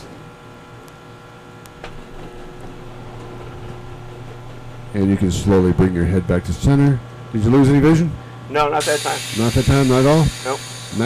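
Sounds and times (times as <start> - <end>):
low machine hum: 0.0 - 11.0
centrifuge whining: 1.7 - 11.0.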